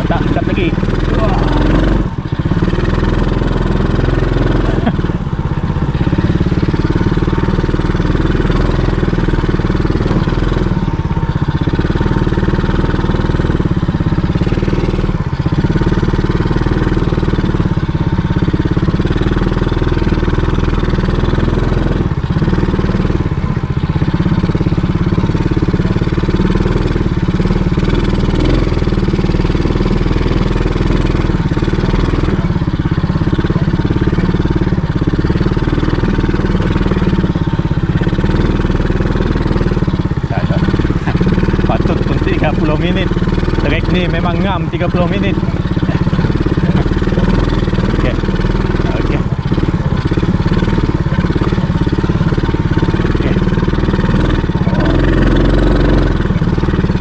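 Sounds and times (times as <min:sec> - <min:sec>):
quad bike engine running: 0:00.0 - 0:57.0.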